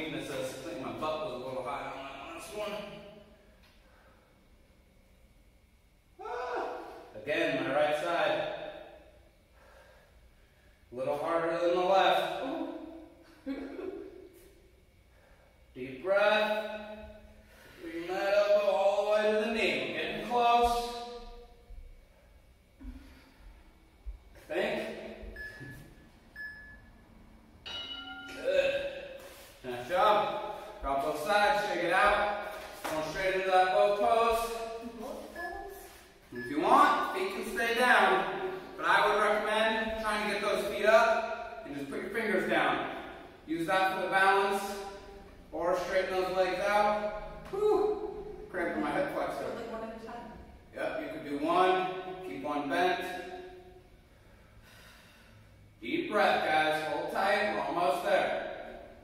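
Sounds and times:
man speaking: 0.0 - 3.0, 17.8 - 21.0, 24.4 - 25.2, 28.3 - 29.0, 29.6 - 34.6, 36.3 - 47.1, 48.5 - 49.6
timer short high beeps: 35.3 - 37.1.

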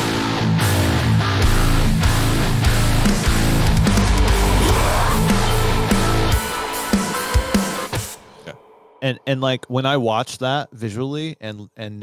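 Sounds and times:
heavy metal song: 0.0 - 8.5.

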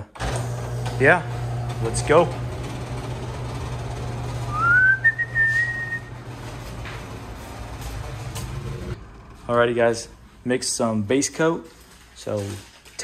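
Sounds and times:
exhaust fan humming: 0.2 - 11.1
rising whistle: 4.5 - 6.2.

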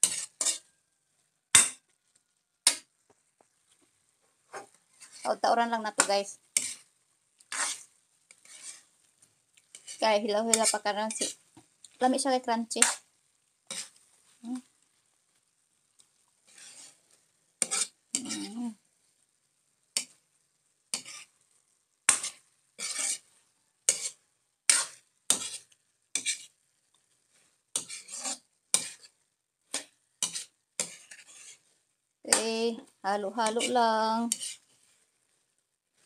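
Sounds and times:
spatula scraping metal wok: 0.0 - 2.9, 4.4 - 14.9, 16.0 - 18.8, 20.0 - 20.3, 20.9 - 36.0
faint sizzle of frying: 0.0 - 36.0.

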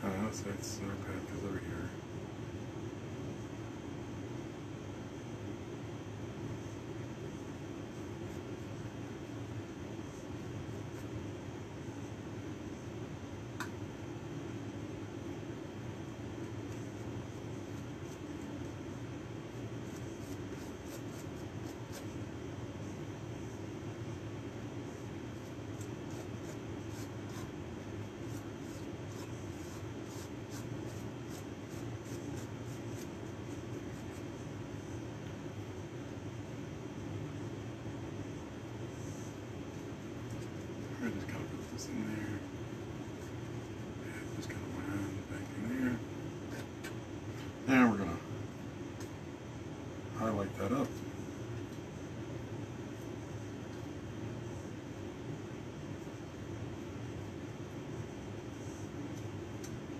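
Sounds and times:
low background hum: 0.0 - 59.9
paintbrush dabbing on canvas: 16.4 - 22.2, 24.9 - 35.0.

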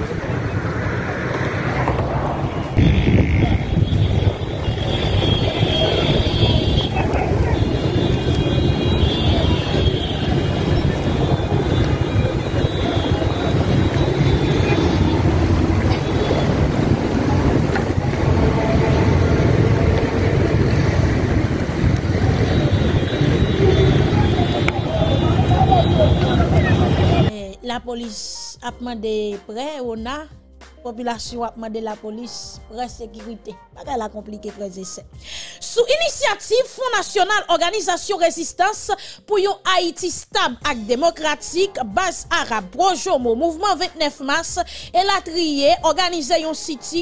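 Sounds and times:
traffic: 0.0 - 27.3
wind rumbling on microphone: 0.0 - 27.3
voices: 5.2 - 19.0, 21.8 - 28.4.

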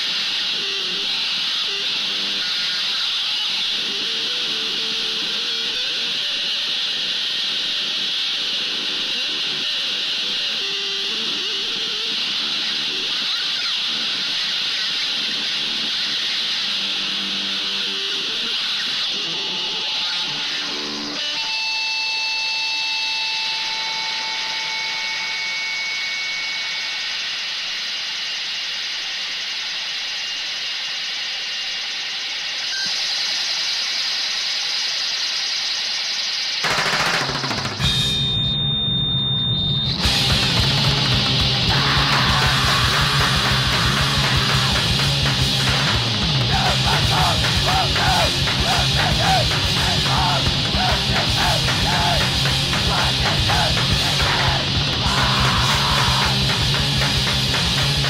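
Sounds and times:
harsh distorted noise: 32.9 - 58.0
high squealing tones: 37.8 - 58.0
punk band playing: 40.0 - 58.0.

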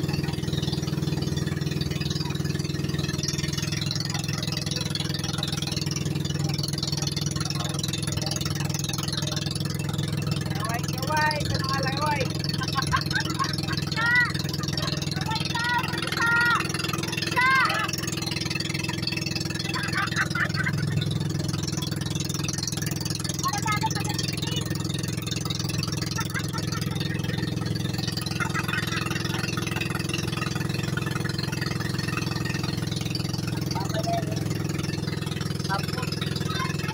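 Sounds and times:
boat engine droning: 0.0 - 36.9.

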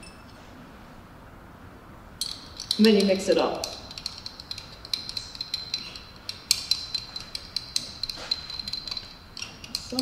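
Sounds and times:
brush clicking against glass jar: 2.2 - 10.0.

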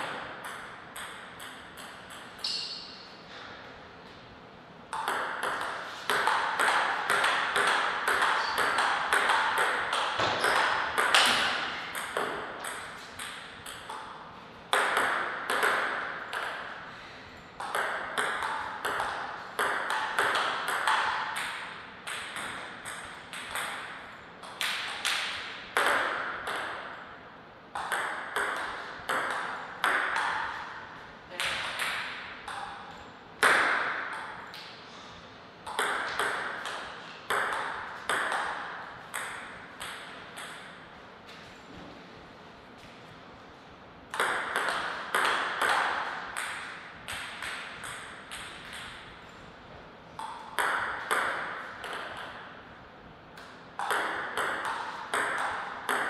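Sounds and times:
table tennis ball hits: 0.0 - 3.1, 4.9 - 16.8, 17.6 - 34.7, 35.6 - 40.9, 44.1 - 49.2, 50.2 - 52.5, 53.4 - 56.0.

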